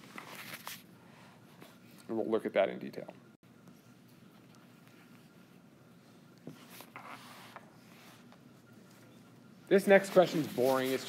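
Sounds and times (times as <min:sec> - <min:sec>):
faint scratching and rubbing: 0:09.1 - 0:11.0.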